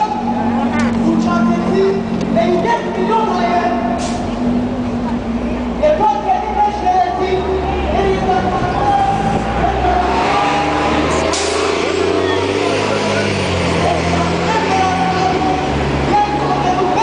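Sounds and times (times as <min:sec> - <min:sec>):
bus engine running: 0:00.0 - 0:17.0
crowd voices: 0:00.0 - 0:17.0.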